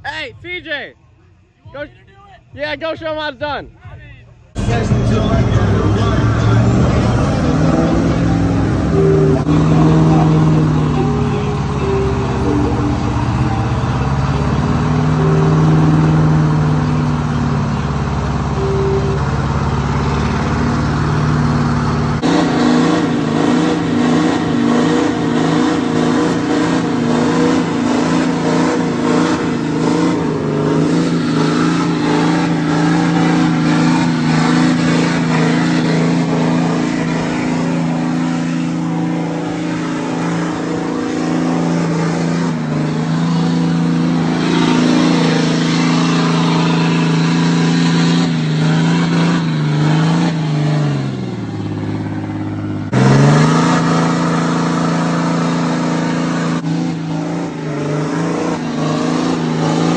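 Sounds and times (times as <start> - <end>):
pickup truck engine revving: 4.5 - 59.9
tires spinning on pavement: 4.5 - 59.9.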